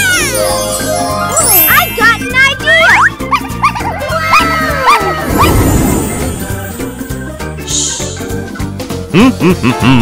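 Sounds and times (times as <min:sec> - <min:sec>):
tinkling sparkle sweep: 0:00.0 - 0:02.4, 0:05.2 - 0:08.2
children's music with steady beat: 0:00.0 - 0:04.2, 0:05.5 - 0:10.0.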